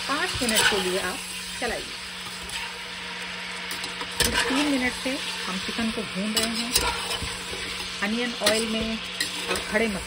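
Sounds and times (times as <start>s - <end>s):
chicken sizzling in hot oil: 0.0s - 10.0s.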